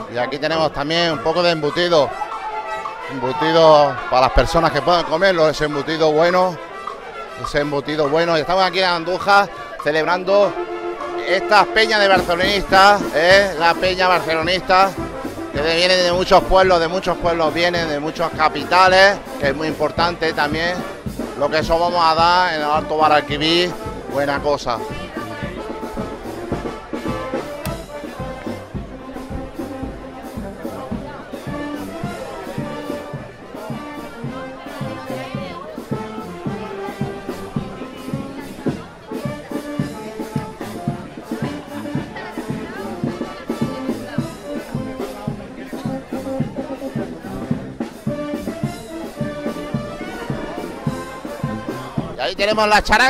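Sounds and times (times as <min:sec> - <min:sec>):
brass band with drums: 0:00.0 - 0:53.0
crowd chatter: 0:00.0 - 0:53.0.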